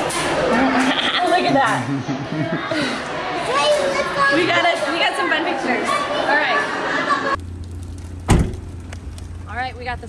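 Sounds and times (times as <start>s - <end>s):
people talking at once: 0.5s - 7.4s
car door shutting: 8.1s - 8.8s.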